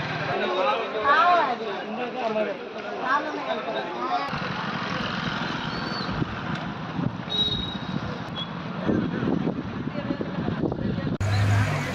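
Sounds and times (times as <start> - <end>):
vehicles passing on wet road: 11.2 - 11.9.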